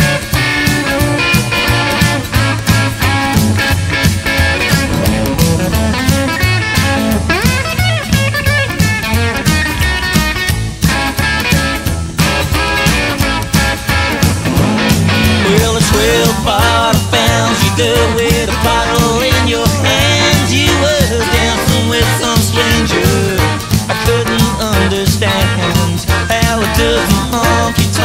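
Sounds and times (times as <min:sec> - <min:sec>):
drums: 0:00.0 - 0:28.0
lead guitar: 0:00.0 - 0:28.0
stepping bass line: 0:00.0 - 0:28.0.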